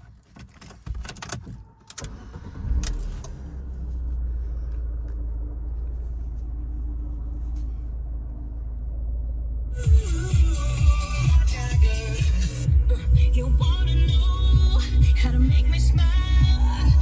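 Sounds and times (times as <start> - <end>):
car engine starting and idling: 0.0 - 17.0.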